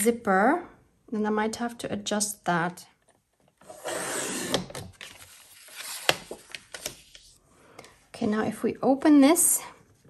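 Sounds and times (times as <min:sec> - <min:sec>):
paper trimmer blade scraping: 0:03.6 - 0:04.7
paper rustling and clicks: 0:04.8 - 0:07.3.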